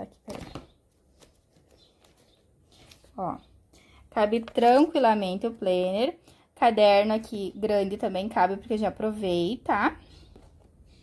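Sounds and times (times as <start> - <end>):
faint handling noises: 0.3 - 3.2.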